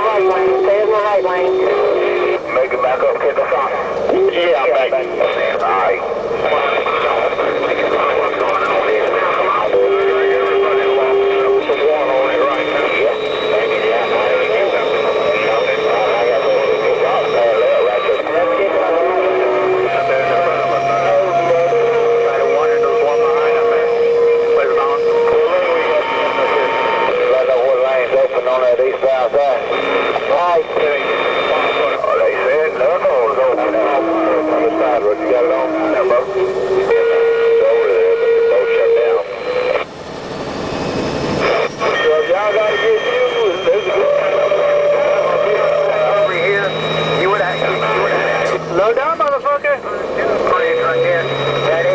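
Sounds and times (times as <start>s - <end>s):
garbled radio voices: 0.0s - 39.9s, 41.1s - 51.9s
radio whistling tones: 0.0s - 51.9s.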